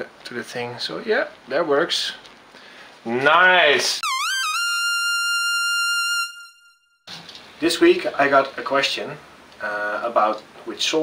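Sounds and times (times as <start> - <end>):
buzzy synthesized note: 4.0 - 7.0.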